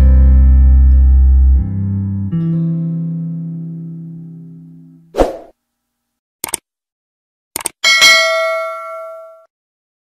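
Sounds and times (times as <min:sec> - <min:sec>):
bright metallic bell ding: 0:07.8 - 0:09.5.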